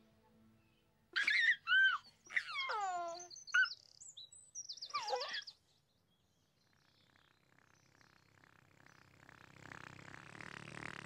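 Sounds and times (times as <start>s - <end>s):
birds chirping and whistling: 1.2s - 5.6s.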